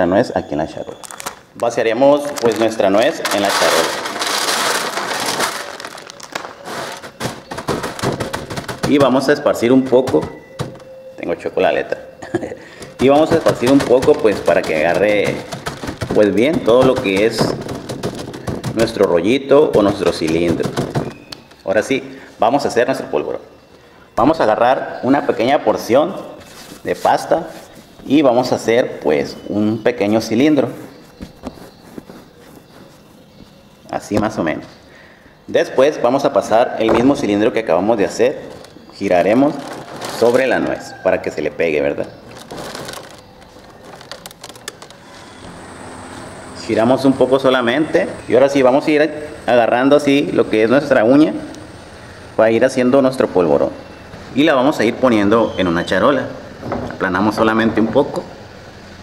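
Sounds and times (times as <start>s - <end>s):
plastic bag crinkling: 1.0s - 10.9s, 12.8s - 21.4s, 38.0s - 40.9s, 42.0s - 45.2s
nuts rattling onto metal tray: 2.4s - 9.0s
hands rubbing dough: 12.8s - 21.3s, 26.2s - 28.6s, 29.3s - 33.6s.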